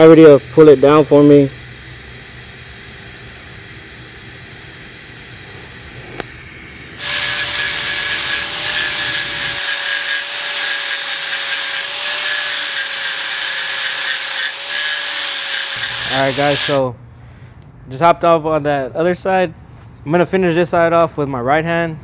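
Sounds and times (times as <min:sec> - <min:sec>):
angle grinder grinding metal: 0:00.0 - 0:16.8
welding arc buzzing: 0:00.0 - 0:16.8.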